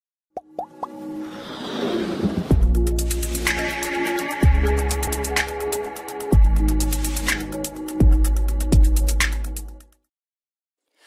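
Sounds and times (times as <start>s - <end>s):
swelling music: 0.6s - 9.9s.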